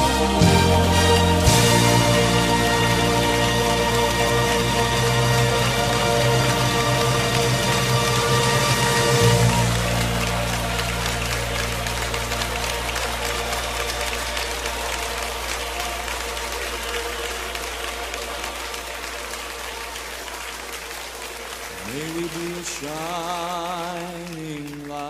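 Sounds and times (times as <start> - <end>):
song with rising note: 0.0 - 22.3
crowd applauding: 0.0 - 25.0
held chord of worship song: 0.0 - 25.0.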